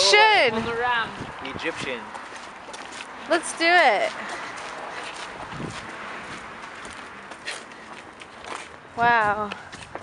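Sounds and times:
outdoor background noise: 0.0s - 10.0s
footsteps: 0.2s - 10.0s.

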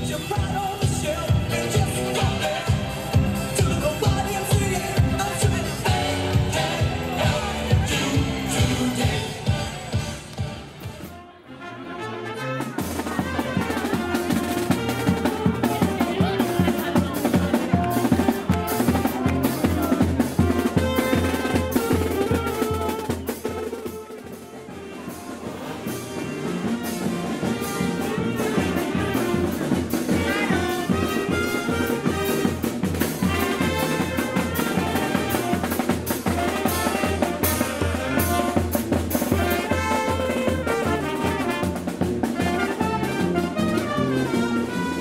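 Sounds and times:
bass drum beat: 0.0s - 11.0s, 13.0s - 23.7s
brass band playing: 0.0s - 45.0s
snare drum: 12.8s - 45.0s.

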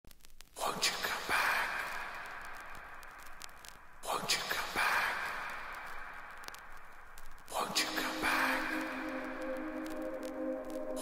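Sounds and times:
breathy whispered voice sample: 0.6s - 11.0s
sustained hissy tone: 7.5s - 11.0s.

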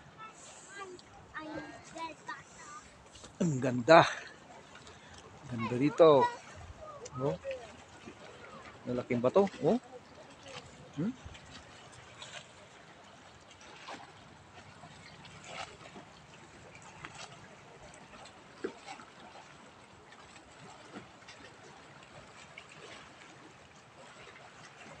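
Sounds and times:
water lapping among boulders: 0.0s - 25.0s.

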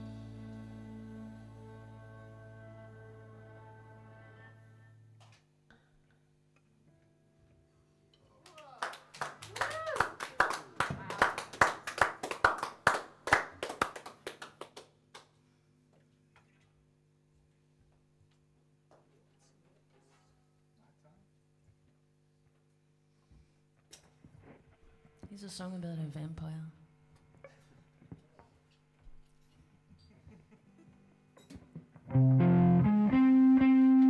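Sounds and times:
faint amplifier hum: 0.0s - 14.1s, 15.4s - 34.0s
person cheering: 8.3s - 11.6s
people clapping: 8.3s - 15.4s.

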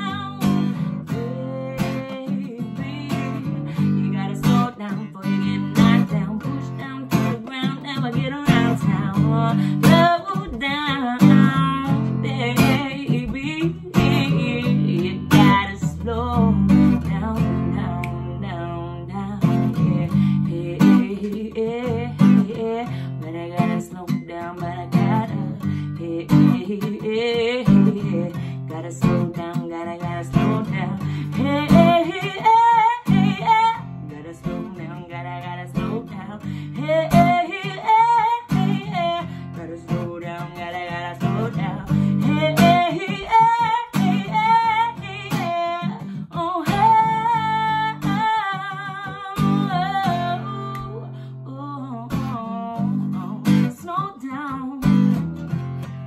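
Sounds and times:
acoustic guitar strummed: 0.0s - 51.3s
woman singing: 0.0s - 56.0s.

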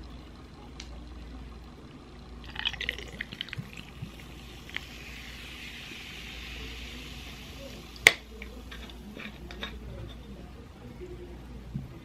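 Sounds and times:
soda fizzing: 2.4s - 10.0s
cola pouring into a glass: 2.4s - 10.1s.

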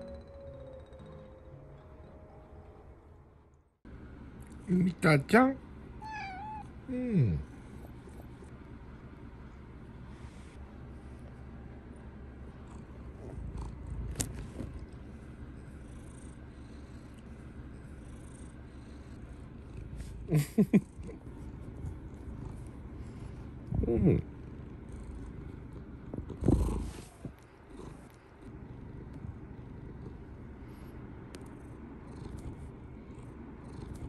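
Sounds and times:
cat purring: 12.4s - 34.0s.

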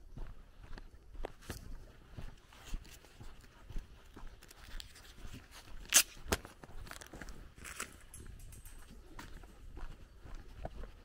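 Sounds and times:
footsteps on gravel: 0.0s - 11.0s.

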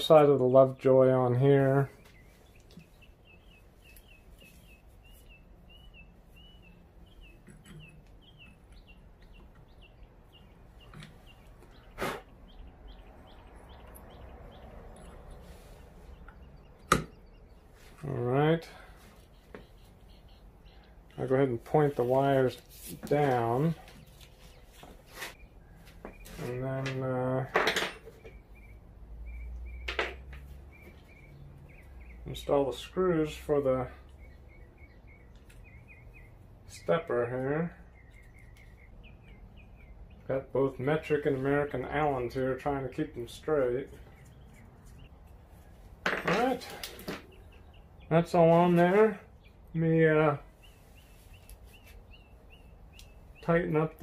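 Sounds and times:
bird chirping: 0.0s - 54.0s.

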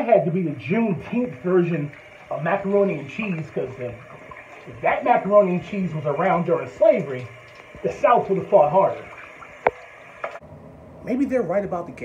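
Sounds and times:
shower spray hissing: 0.5s - 10.4s.

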